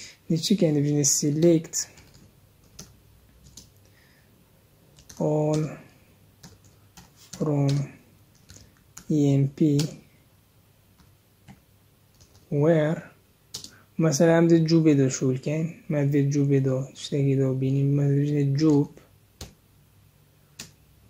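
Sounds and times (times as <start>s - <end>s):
keystrokes on computer keyboard: 1.8s - 3.8s, 4.9s - 10.1s, 11.0s - 12.5s, 13.5s - 13.8s, 18.7s - 19.6s, 20.6s - 20.8s.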